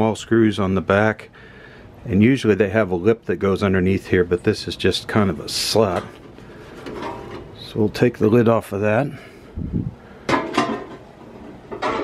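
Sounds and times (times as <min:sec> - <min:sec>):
sheet metal cover clattering: 0:06.8 - 0:07.5, 0:10.3 - 0:11.0, 0:11.7 - 0:12.0.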